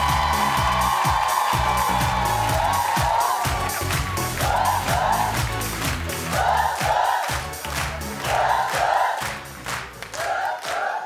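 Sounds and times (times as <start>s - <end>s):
audience chanting and cheering: 0.0s - 11.0s
upbeat theme music: 0.0s - 11.0s.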